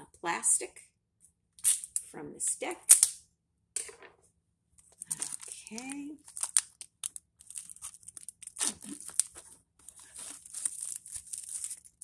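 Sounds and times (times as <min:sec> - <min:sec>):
plastic shrink-wrap crinkling: 0:04.8 - 0:12.0.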